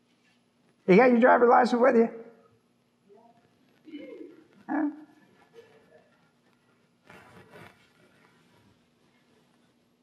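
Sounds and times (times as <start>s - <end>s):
man saying huh: 3.9s - 5.1s
man humming: 4.7s - 5.1s.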